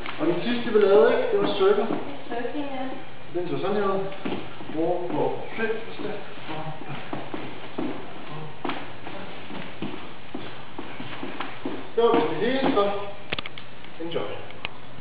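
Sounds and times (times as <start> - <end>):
dance shoes tapping on floor: 0.8 - 2.2, 4.1 - 5.3, 5.9 - 13.2.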